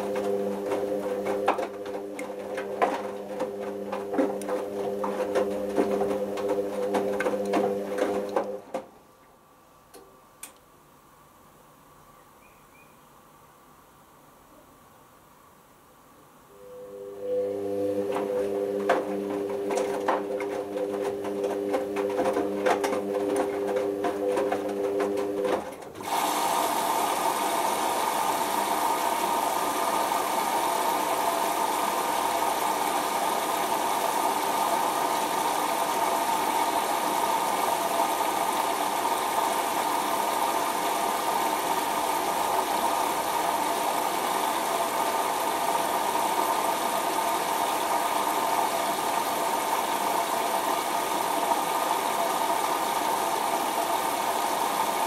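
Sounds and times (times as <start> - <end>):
washing machine motor whine: 0.0 - 8.8, 16.5 - 55.0.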